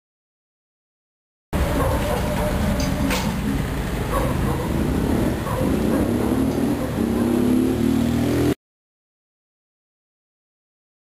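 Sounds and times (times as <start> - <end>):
low rumbling street noise: 1.5 - 8.6.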